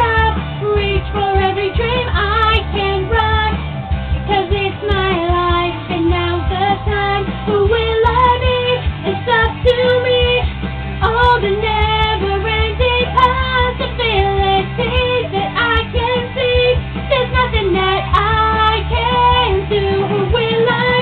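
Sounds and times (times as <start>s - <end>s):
backing music with bass: 0.0s - 21.0s
woman singing pop song: 0.0s - 21.0s.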